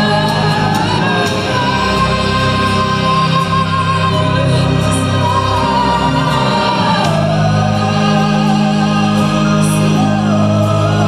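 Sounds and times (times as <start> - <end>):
female voice singing: 0.0 - 11.0
keyboard chords: 0.0 - 11.0
low bass: 0.0 - 11.0.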